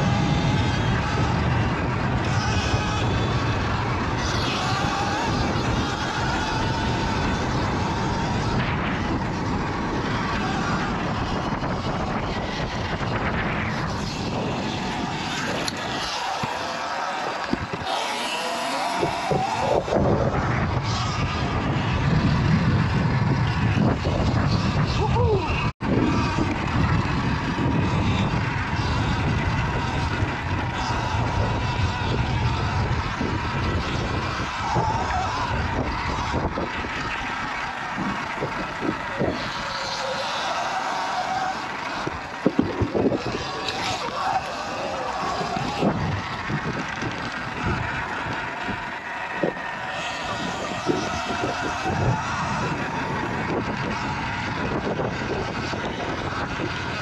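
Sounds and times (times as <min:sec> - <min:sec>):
wind and riding noise: 0:00.0 - 0:57.0.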